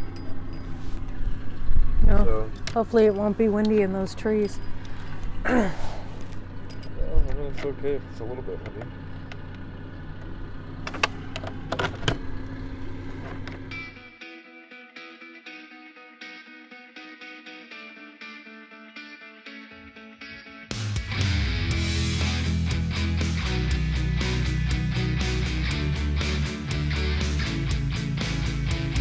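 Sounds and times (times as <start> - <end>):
low steady rumble: 0.0 - 14.1
guitar-driven rock music: 13.7 - 29.0
background music: 13.9 - 29.0.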